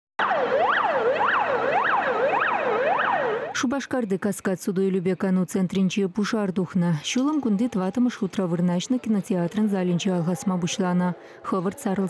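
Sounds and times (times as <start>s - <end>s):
fire engine siren wailing: 0.2s - 3.6s.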